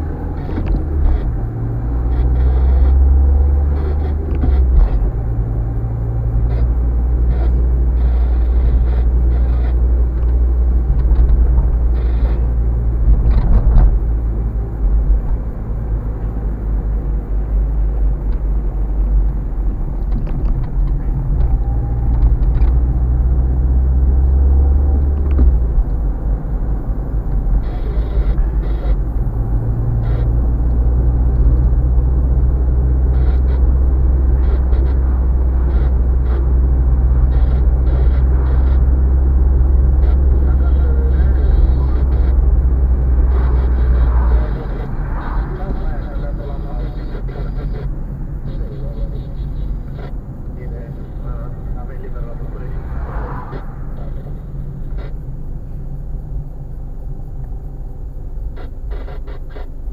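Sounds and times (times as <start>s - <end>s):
car engine and road rumble: 0.0s - 59.9s.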